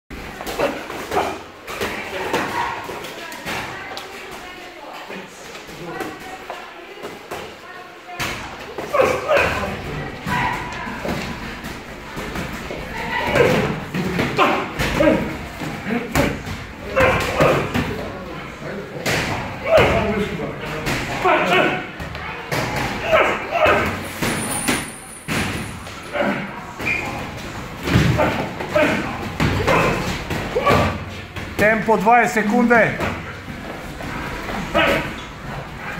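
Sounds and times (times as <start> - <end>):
voices talking and calling out: 0.1 - 35.9.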